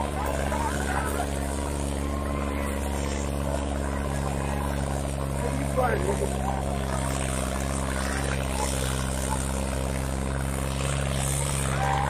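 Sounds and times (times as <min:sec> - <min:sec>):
tractor diesel engine under load: 0:00.0 - 0:12.0.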